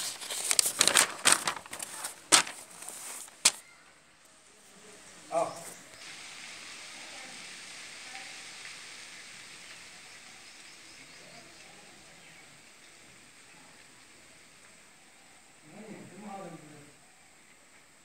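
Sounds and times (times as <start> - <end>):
steady hiss: 0.0 - 18.0.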